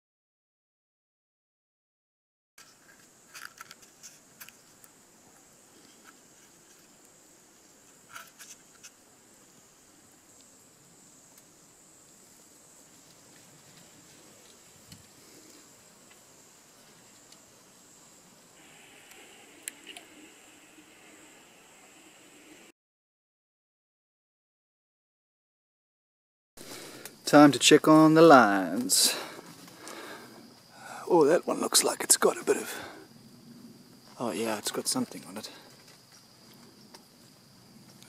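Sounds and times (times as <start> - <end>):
high-pitched insect drone: 15.2 - 22.7.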